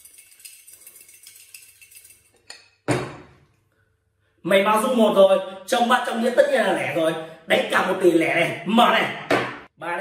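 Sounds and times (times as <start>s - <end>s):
counters rattling in a porcelain bowl: 0.0s - 2.6s.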